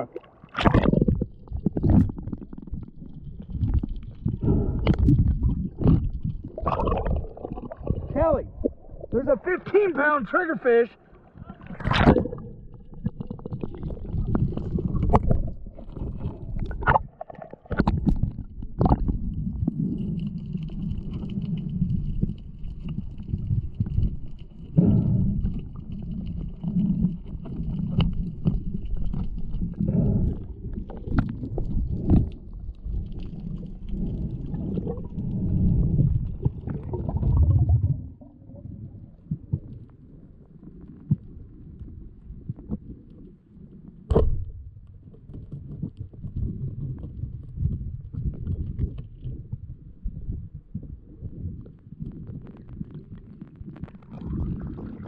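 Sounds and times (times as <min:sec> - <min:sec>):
muffled underwater rumble: 0:00.0 - 0:09.9, 0:11.0 - 0:55.0.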